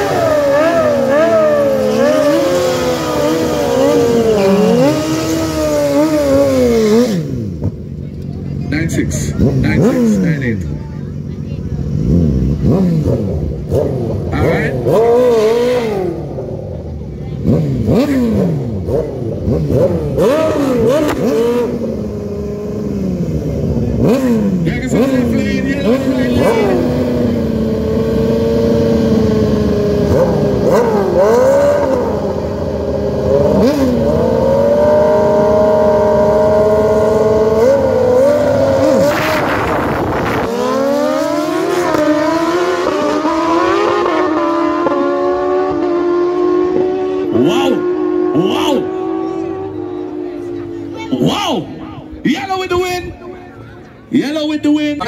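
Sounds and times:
motorcycle engines revving: 0:00.0 - 0:55.0
motorcycles launching: 0:00.0 - 0:55.0.

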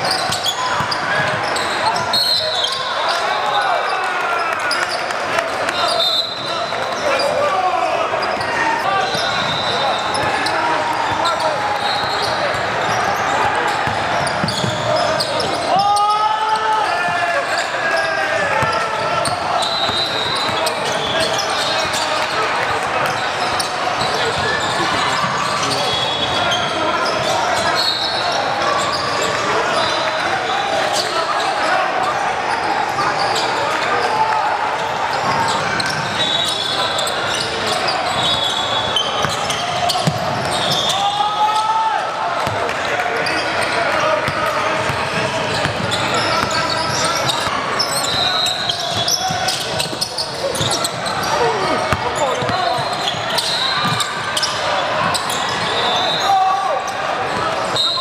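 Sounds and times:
sneaker squeaks on hardwood: 0:00.0 - 0:03.2, 0:13.7 - 0:15.8, 0:35.5 - 0:41.1, 0:44.2 - 0:56.3
chatter and calls: 0:00.0 - 0:58.0
basketball dribbling: 0:44.2 - 0:47.6.

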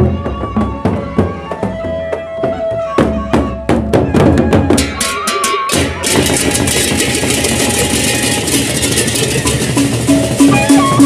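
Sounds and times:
drumming: 0:00.0 - 0:11.0
hand cymbals clashing: 0:04.9 - 0:11.0
kettle gong notes: 0:07.1 - 0:11.0.

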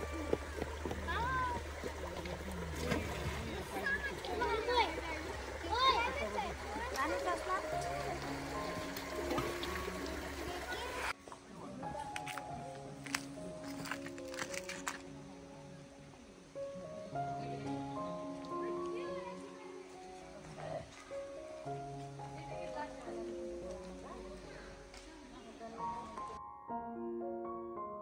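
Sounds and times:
people talking: 0:00.0 - 0:12.7, 0:17.4 - 0:20.8, 0:22.3 - 0:26.4
background music with held notes: 0:00.0 - 0:28.0.

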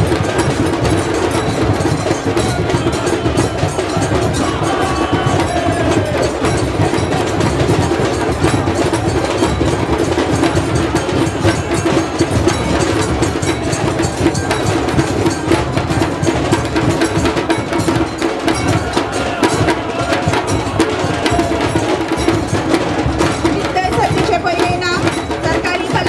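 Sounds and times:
music with percussion: 0:00.0 - 0:26.0.

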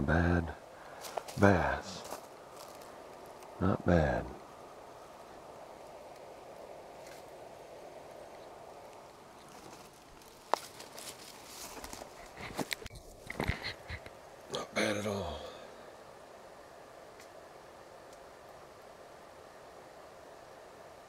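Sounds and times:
faint steady background noise: 0:00.0 - 0:21.0
knocks and rustles in dry grass: 0:01.0 - 0:03.5, 0:06.9 - 0:14.1.

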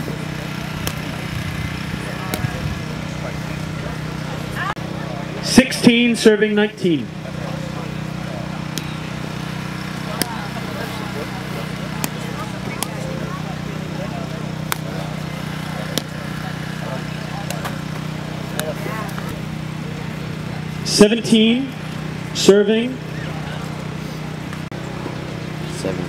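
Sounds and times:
steady low hum: 0:00.0 - 0:26.0.

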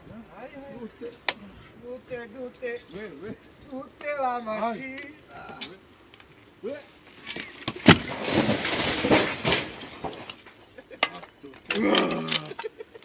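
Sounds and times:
chimney toppling with a crack: 0:07.1 - 0:13.0
falling bricks clattering: 0:07.3 - 0:12.8.

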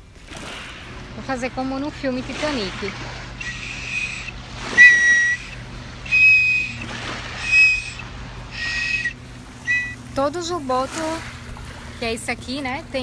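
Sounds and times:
plastic whistle blasts: 0:03.4 - 0:10.0.

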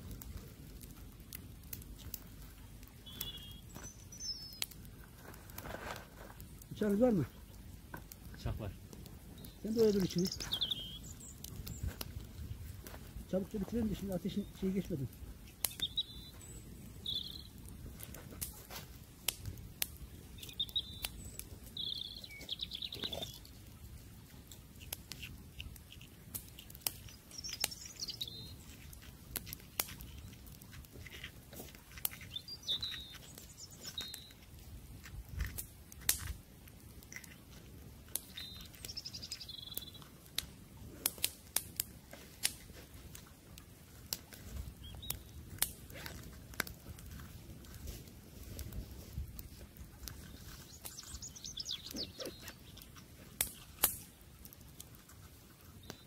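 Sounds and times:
campfire crackling and popping: 0:00.0 - 0:56.0
small birds chirping: 0:01.7 - 0:18.6, 0:19.4 - 0:36.2, 0:36.9 - 0:40.4, 0:44.0 - 0:56.0.

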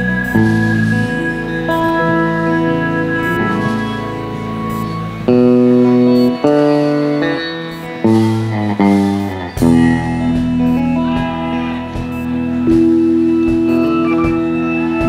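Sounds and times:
bass: 0:00.0 - 0:15.0
electric guitar sustained melody: 0:00.0 - 0:15.0
keyboards: 0:00.0 - 0:15.0.

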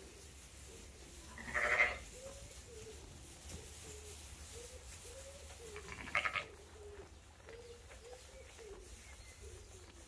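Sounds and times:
sheep bleating: 0:01.4 - 0:02.0, 0:05.8 - 0:06.6.

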